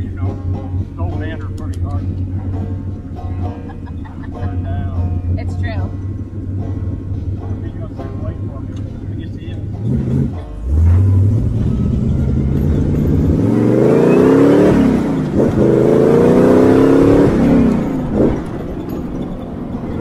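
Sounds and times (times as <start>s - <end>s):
car engine accelerating: 0.0s - 20.0s.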